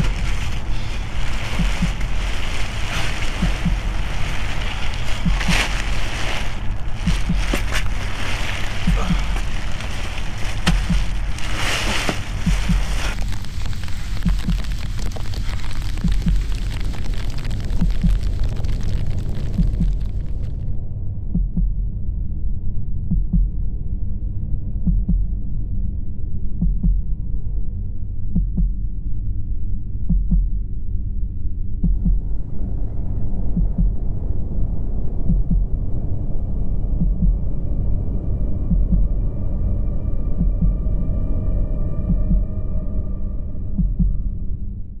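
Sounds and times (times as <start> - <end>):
low steady drone: 0.0 - 15.5, 17.5 - 45.0
heartbeat double thump: 5.0 - 5.9, 10.6 - 11.4, 12.2 - 13.2, 16.0 - 16.6, 19.6 - 20.1, 21.3 - 21.9, 23.1 - 23.6, 24.9 - 25.3, 26.6 - 27.1, 28.4 - 28.8, 30.1 - 30.6, 31.8 - 32.3, 33.5 - 34.0, 35.2 - 35.7, 37.0 - 37.5, 38.7 - 39.2, 43.8 - 44.3
heartbeat-like double thump: 21.4 - 21.9, 30.1 - 30.6, 31.8 - 32.3, 33.5 - 34.0, 37.0 - 37.5.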